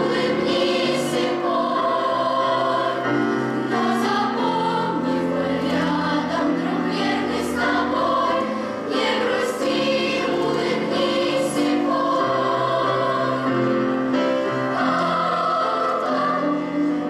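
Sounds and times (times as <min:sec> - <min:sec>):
children's choir singing: 0:00.0 - 0:17.0.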